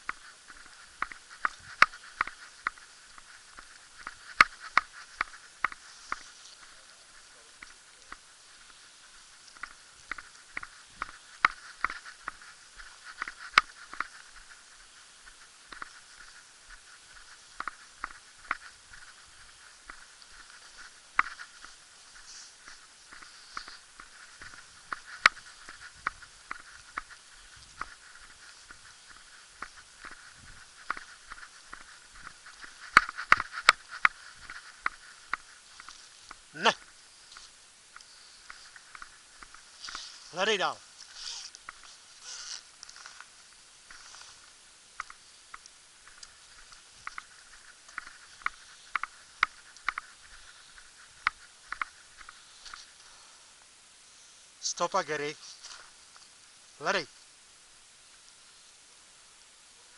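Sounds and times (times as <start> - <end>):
faint steady background noise: 0.0 - 59.9
footsteps on paved street: 0.1 - 37.6.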